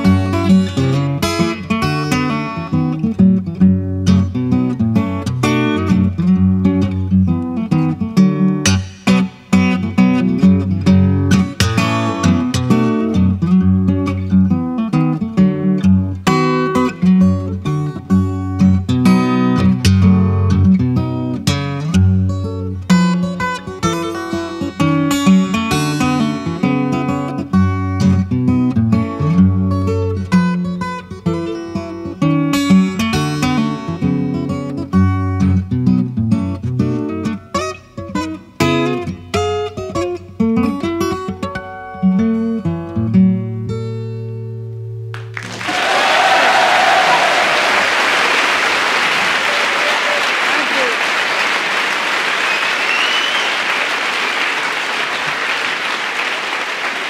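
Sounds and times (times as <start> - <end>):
acoustic guitar playing: 0.0 - 45.5
audience applause: 45.2 - 57.0.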